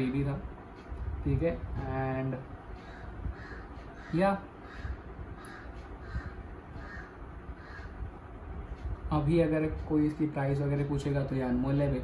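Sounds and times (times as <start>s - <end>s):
low steady rumble: 0.0s - 12.0s
crow cawing: 2.8s - 8.0s.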